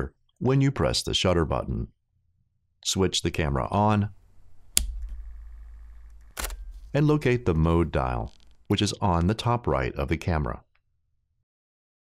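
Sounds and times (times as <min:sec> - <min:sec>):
camera faint high buzz: 0:04.3 - 0:08.8
camera sharp click: 0:04.8 - 0:07.1.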